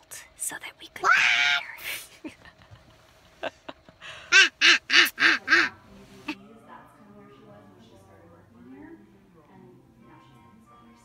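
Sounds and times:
woman laughing: 1.8 - 5.7.

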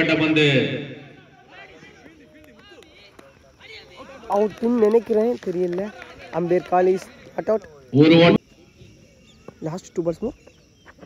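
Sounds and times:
distant shouting voices: 0.0 - 10.8.

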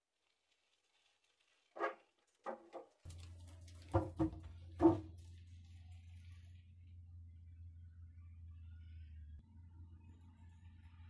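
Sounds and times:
bike thumping on wooden ramp: 2.4 - 5.3
low steady hum: 3.1 - 11.0.

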